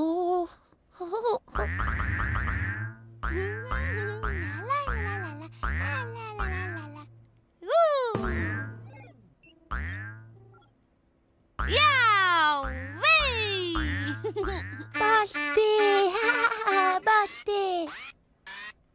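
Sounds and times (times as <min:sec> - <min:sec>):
ball bouncing with springy boing: 0:01.6 - 0:07.2, 0:08.1 - 0:10.7, 0:11.6 - 0:15.0.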